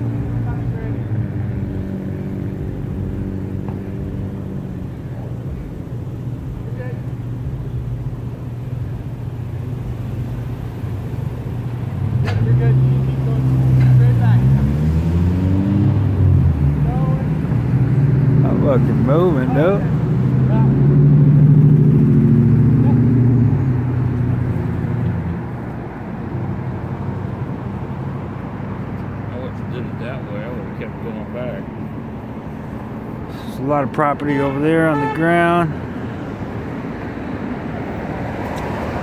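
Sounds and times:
car engines idling: 0:00.0 - 0:39.0.

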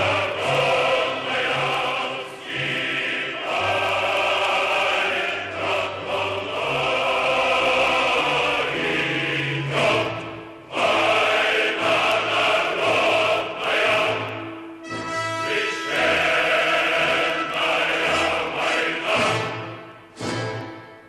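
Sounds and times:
choir singing: 0:00.0 - 0:21.0
musical accompaniment: 0:00.0 - 0:21.0.

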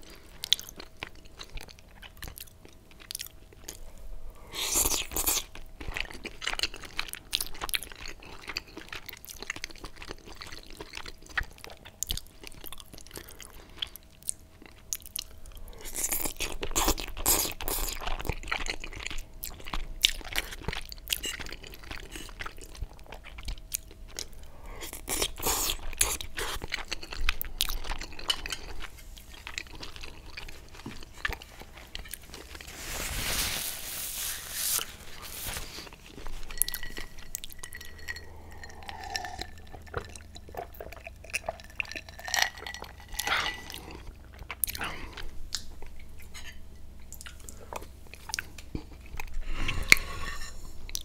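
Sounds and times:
wet chewing and slurping: 0:04.6 - 0:32.7, 0:34.7 - 0:45.7.

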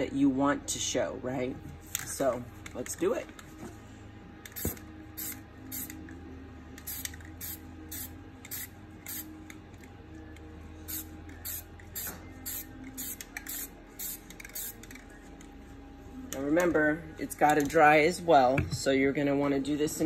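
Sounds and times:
spray-paint can hissing: 0:04.5 - 0:06.0, 0:06.8 - 0:09.3, 0:10.9 - 0:14.8.

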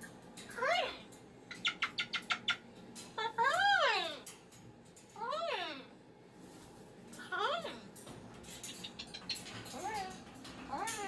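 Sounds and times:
cockatoo chirping: 0:01.5 - 0:02.7.

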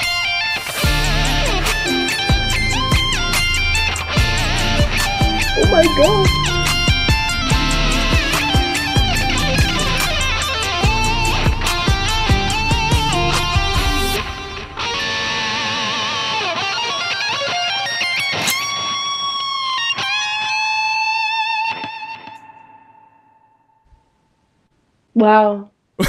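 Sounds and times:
electric guitar solo: 0:00.0 - 0:23.8.

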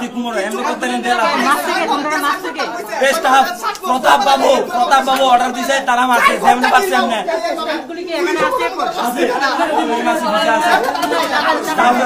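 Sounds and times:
voices chattering: 0:00.0 - 0:12.0
man talking: 0:02.7 - 0:11.0.

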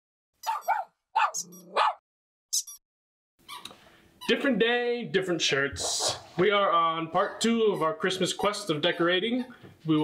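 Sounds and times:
dog barking: 0:00.4 - 0:02.0.

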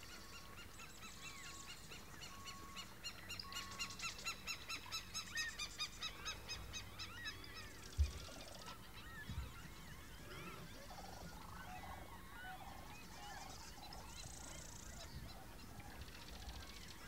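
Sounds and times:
birds calling and chattering: 0:00.0 - 0:17.0.

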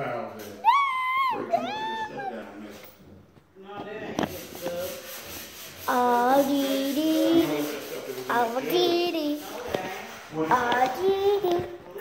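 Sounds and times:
high-pitched meow-like cries: 0:00.6 - 0:02.4.

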